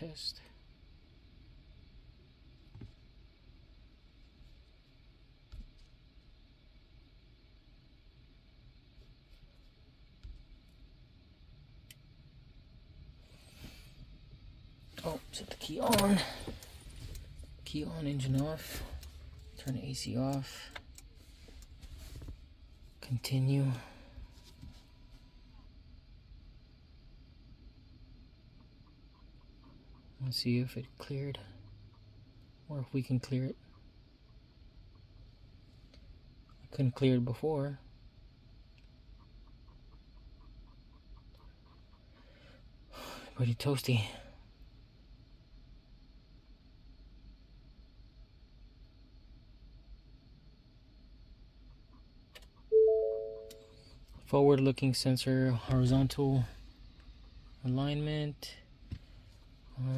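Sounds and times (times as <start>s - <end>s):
faint high whine: 52.4s - 58.8s
electronic chime: 52.7s - 53.7s
thin steady tone: 52.7s - 55.1s.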